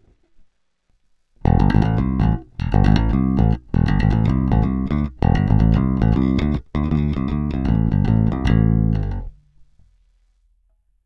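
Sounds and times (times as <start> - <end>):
electric bass riff: 1.4 - 9.4.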